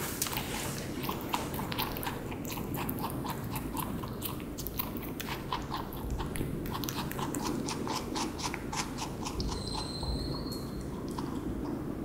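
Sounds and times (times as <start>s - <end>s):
rabbit chewing: 0.0s - 12.0s.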